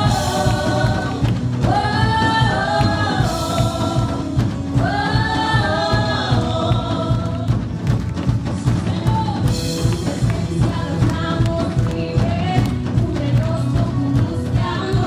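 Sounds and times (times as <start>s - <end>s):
several voices singing worship song: 0.0s - 8.0s, 9.4s - 15.0s
band with steady beat: 0.0s - 15.0s.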